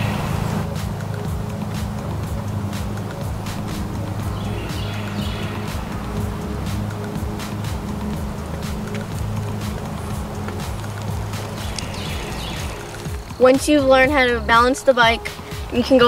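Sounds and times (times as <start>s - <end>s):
background music with steady beat: 0.0s - 16.0s.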